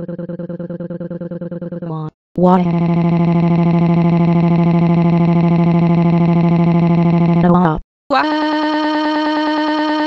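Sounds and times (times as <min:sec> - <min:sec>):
synthetic voice droning: 0:00.0 - 0:10.0.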